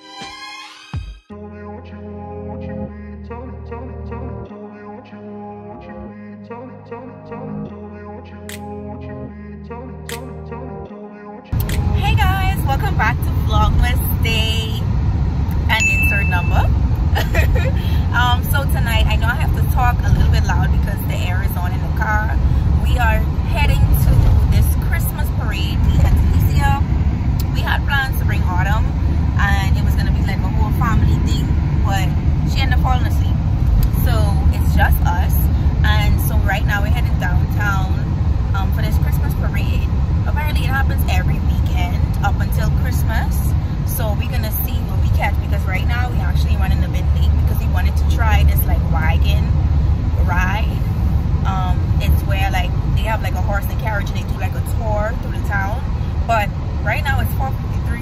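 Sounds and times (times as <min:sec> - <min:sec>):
woman talking: 0:11.6 - 0:14.9, 0:15.5 - 0:49.6, 0:50.2 - 0:58.0
car cabin rumble: 0:11.6 - 0:58.0
air vents blowing: 0:16.7 - 0:38.9.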